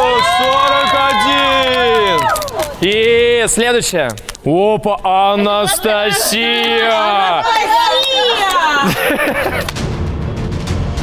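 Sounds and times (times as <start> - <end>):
young women cheering and shrieking: 0.0 - 2.8, 5.5 - 9.1.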